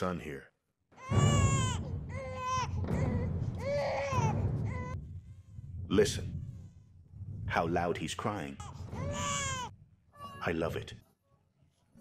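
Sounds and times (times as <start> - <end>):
baby crying: 1.0 - 5.0, 8.6 - 10.5.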